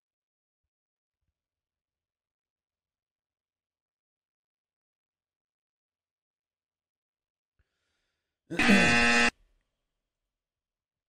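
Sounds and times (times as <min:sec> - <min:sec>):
horn-like tone: 0:08.6 - 0:09.3.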